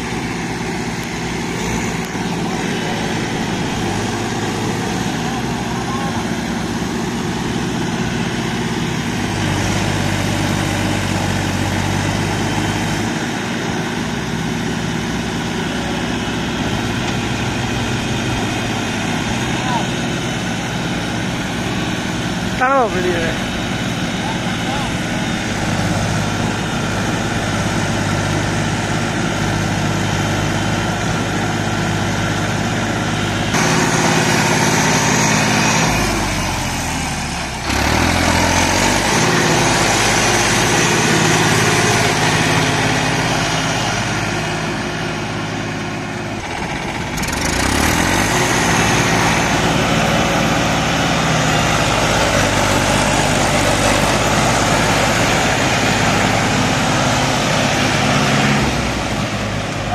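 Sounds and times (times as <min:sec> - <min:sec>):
tractor engines straining: 0:00.0 - 0:59.9.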